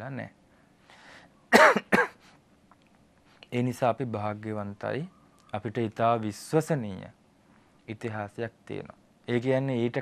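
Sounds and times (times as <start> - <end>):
man coughing: 1.5 - 2.2
man clearing his throat: 1.6 - 2.2.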